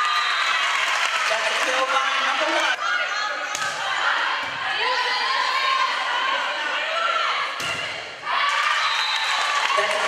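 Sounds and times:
voices echoing in a gym: 0.0 - 10.0.

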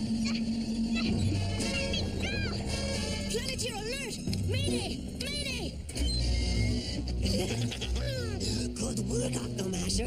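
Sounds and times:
dramatic background music: 0.0 - 10.0.

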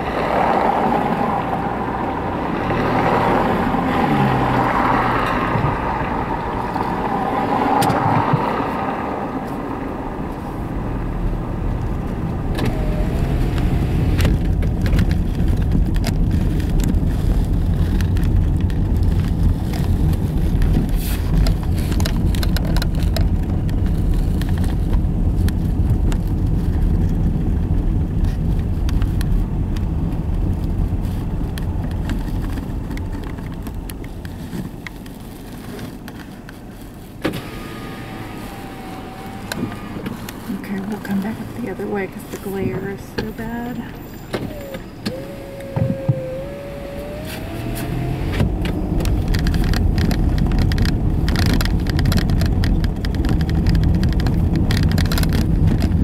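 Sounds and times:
small rattles and clicks: 13.4 - 37.2, 48.4 - 56.0.

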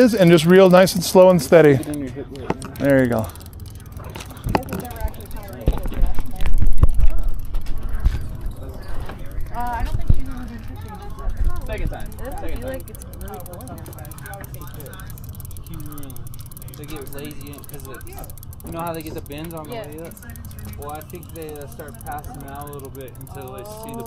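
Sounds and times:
fishing reel gears clicking: 0.0 - 24.0.

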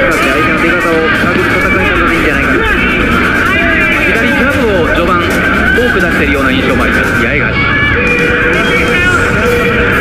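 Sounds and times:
arena crowd noise: 0.0 - 10.0
man commentating: 0.0 - 10.0.

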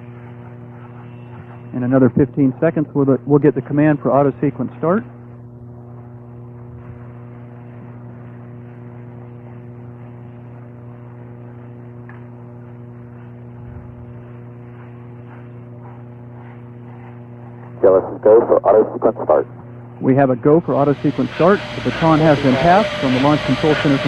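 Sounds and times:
electrical mains hum: 0.0 - 24.0.

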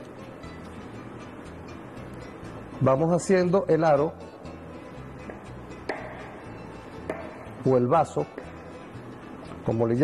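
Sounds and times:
soft background music: 0.0 - 10.0
hammer striking metal chisel: 5.2 - 7.6, 8.2 - 8.6.

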